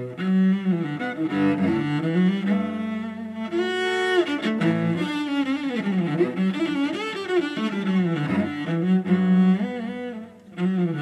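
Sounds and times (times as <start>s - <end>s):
bowed cello melody: 0.0s - 11.0s.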